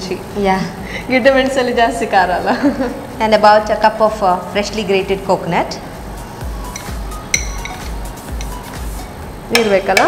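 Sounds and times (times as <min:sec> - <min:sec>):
metal spoon scraping bowl: 0:06.6 - 0:10.0.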